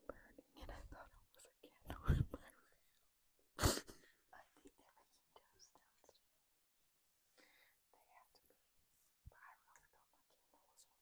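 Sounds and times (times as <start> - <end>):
faint whispering: 0.0 - 3.1, 4.2 - 6.4, 7.4 - 11.0.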